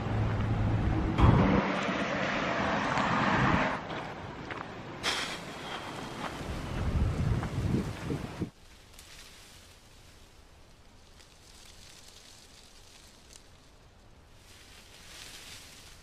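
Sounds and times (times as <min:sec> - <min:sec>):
wind buffeting microphone: 0:05.0 - 0:08.6.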